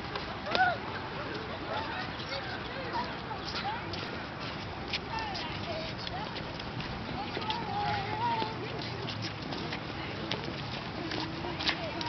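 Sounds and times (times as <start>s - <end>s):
footsteps on concrete: 0.1s - 12.0s
children chattering and calling out: 0.4s - 12.0s.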